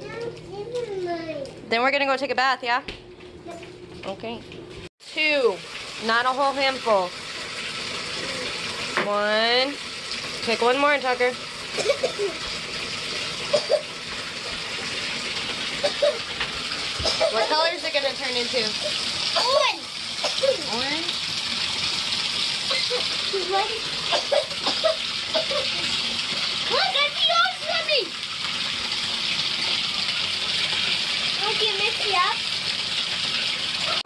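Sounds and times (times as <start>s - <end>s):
child's voice: 0.0s - 1.6s, 3.4s - 3.7s, 19.4s - 19.9s, 26.7s - 28.2s, 31.4s - 32.4s
water pouring into bathtub: 5.0s - 34.0s.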